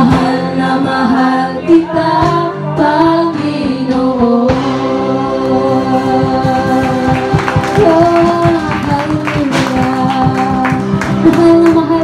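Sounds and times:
bass: 0:00.0 - 0:12.0
drums: 0:00.0 - 0:12.0
electric guitar: 0:00.0 - 0:12.0
keyboard: 0:00.0 - 0:12.0
woman singing lead: 0:00.0 - 0:12.0.

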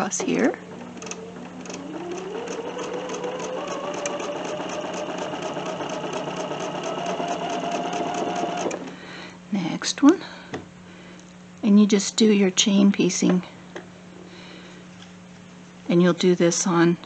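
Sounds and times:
sewing machine stitching: 0:00.0 - 0:09.0.

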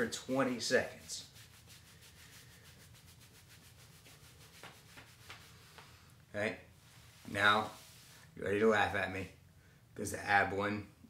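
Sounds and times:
hands rubbing denim jeans: 0:00.4 - 0:06.1, 0:06.8 - 0:08.3.

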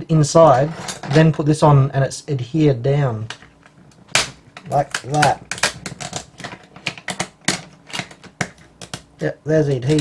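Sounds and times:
plastic clips snapping: 0:04.1 - 0:10.0.

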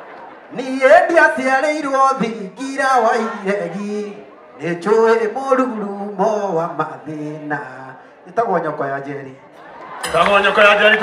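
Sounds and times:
man singing into microphone: 0:00.5 - 0:08.0.

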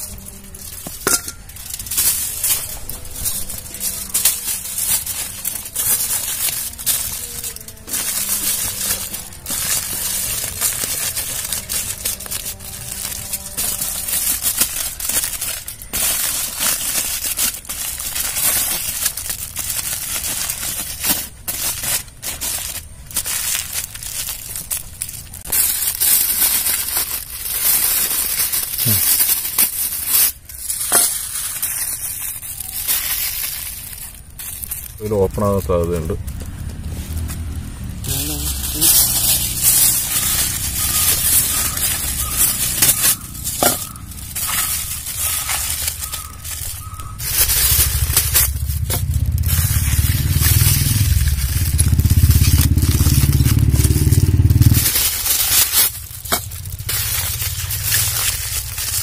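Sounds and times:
aluminium foil crinkling: 0:00.0 - 0:59.0.

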